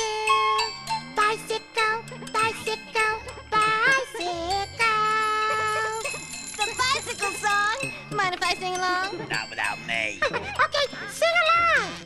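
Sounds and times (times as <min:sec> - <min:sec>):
light tinkling accompaniment: 0:00.0 - 0:11.4
high childlike voice singing: 0:01.2 - 0:09.2.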